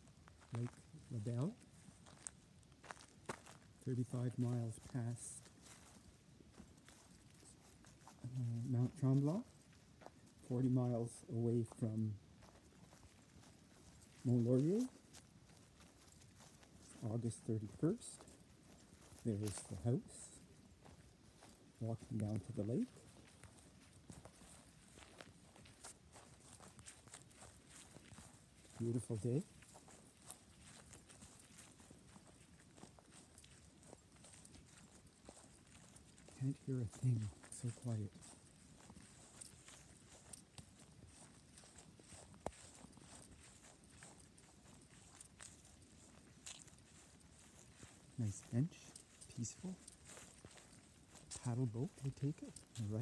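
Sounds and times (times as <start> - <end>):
footsteps on grass: 0.0 - 53.0.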